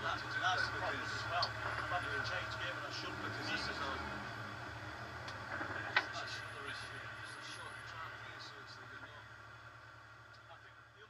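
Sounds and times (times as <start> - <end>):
race car engine running: 0.0 - 11.0.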